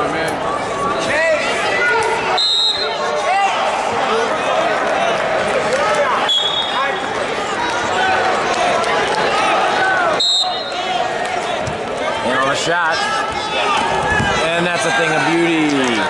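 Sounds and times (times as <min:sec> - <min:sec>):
crowd shouting and talking: 0:00.0 - 0:16.0
referee whistle blasts: 0:02.4 - 0:03.0, 0:06.2 - 0:06.8, 0:10.2 - 0:10.8.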